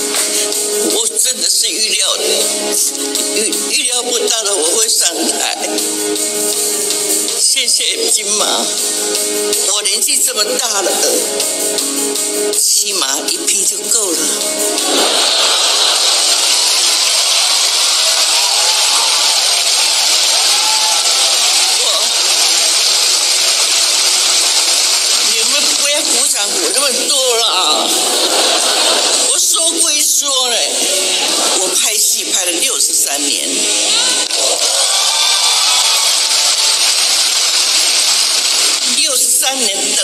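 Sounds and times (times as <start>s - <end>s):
audience applauding: 14.8s - 29.6s, 33.7s - 39.7s
crowd cheering: 14.8s - 32.0s, 33.6s - 40.0s.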